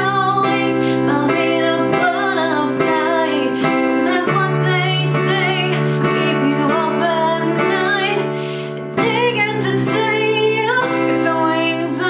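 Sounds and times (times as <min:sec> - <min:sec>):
digital piano chords: 0:00.0 - 0:12.0
woman singing a slow ballad: 0:00.0 - 0:12.0.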